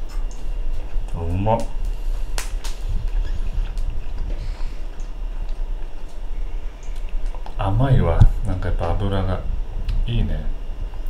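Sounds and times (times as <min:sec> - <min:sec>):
steady low hum: 0:00.0 - 0:11.0
man chewing: 0:00.1 - 0:01.2, 0:01.8 - 0:07.6.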